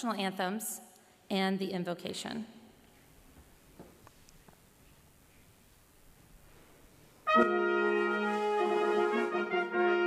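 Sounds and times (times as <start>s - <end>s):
brass band held chord: 7.2s - 10.0s.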